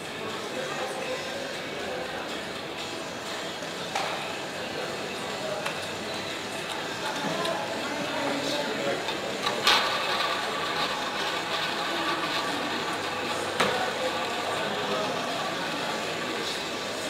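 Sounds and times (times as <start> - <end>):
murmur of voices: 0.0 - 17.0
roulette ball rolling: 9.4 - 16.1.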